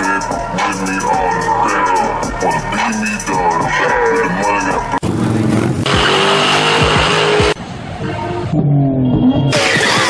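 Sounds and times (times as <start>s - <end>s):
music: 0.0s - 5.0s, 9.5s - 10.0s
car engine running: 2.9s - 7.6s
car tyres squealing: 5.3s - 10.0s.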